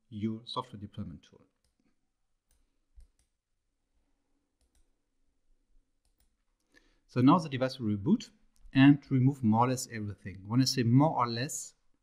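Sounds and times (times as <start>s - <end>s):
mouse click: 6.0s - 6.8s.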